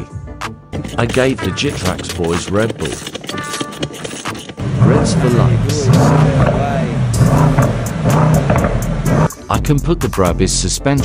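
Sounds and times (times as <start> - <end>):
car engine revving: 0.8 - 9.5
music with singing and beat: 9.2 - 11.0.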